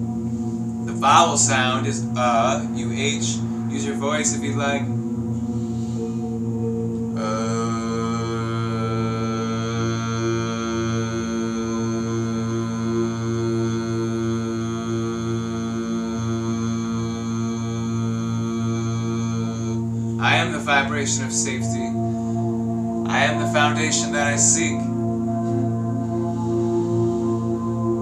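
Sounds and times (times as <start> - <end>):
meditation music with low drone: 0.0 - 28.0
man chanting a long vowel: 0.8 - 5.0, 7.1 - 28.0.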